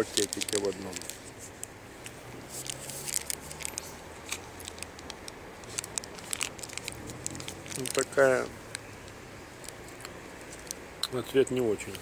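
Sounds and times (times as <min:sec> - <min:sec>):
plastic wrapper crinkling and tearing: 0:00.0 - 0:10.8.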